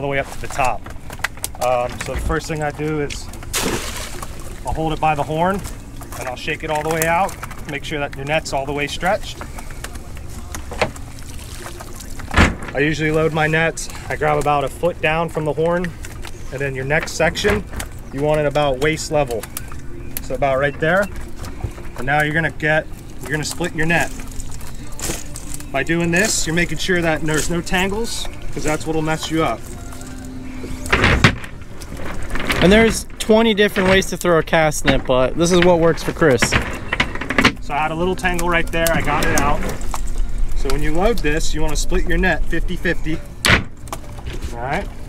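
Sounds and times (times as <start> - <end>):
net rustling and clicking: 0.4 - 13.3, 21.0 - 42.5.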